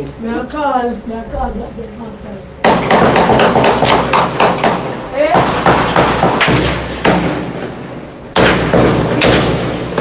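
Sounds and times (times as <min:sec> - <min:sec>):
gunshots: 0:08.4 - 0:10.0.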